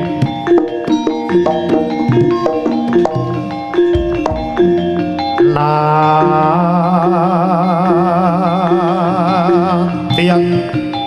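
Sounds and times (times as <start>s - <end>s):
gamelan music: 0.0s - 11.0s
sharp percussive strokes: 0.4s - 5.6s.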